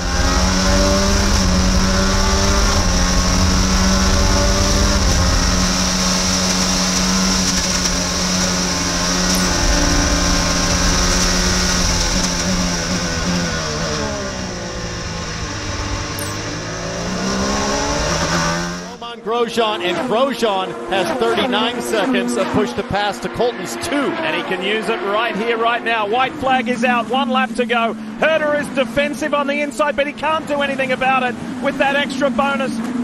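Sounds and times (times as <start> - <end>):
race car engine at high revs: 0.0 - 19.0, 19.6 - 29.6, 30.5 - 33.0.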